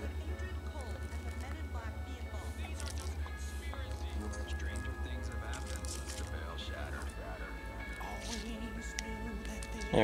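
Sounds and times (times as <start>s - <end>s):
low bass pulse: 0.0s - 10.0s.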